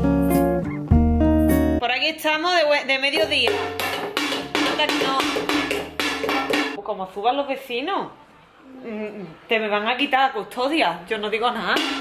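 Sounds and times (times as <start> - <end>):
background music: 0.0 - 1.8
toy drum beaten rapidly: 3.2 - 6.8, 11.7 - 12.0.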